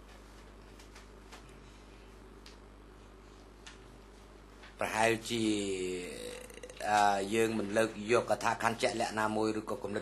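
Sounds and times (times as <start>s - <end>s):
steady low hum: 0.0s - 10.0s
man talking: 4.8s - 10.0s.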